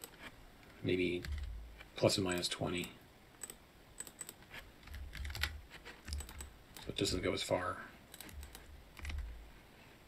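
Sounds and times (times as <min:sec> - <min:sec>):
computer keyboard keystrokes: 0:01.2 - 0:01.6, 0:02.3 - 0:07.0, 0:08.1 - 0:09.3.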